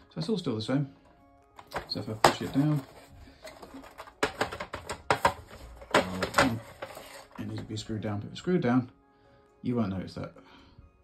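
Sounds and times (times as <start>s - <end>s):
plastic parts clicking together: 1.5s - 7.5s.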